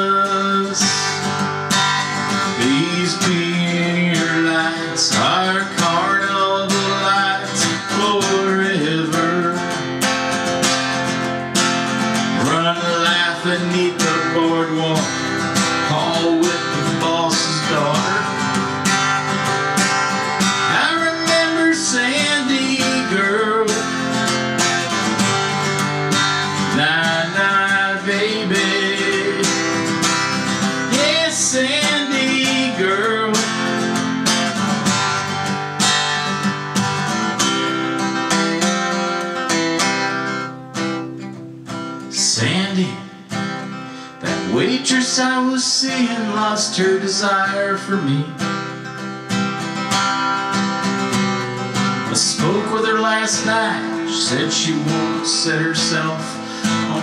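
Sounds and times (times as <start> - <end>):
acoustic guitar strumming and picking: 0.0 - 57.0.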